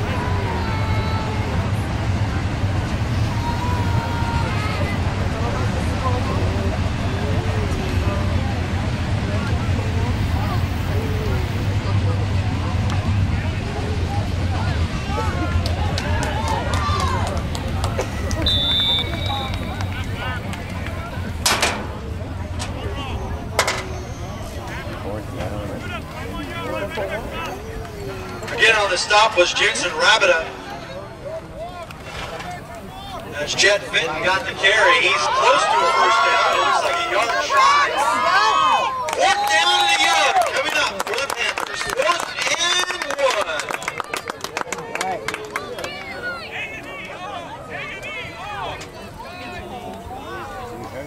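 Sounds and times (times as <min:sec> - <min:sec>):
spectators chattering: 0:00.0 - 0:51.0.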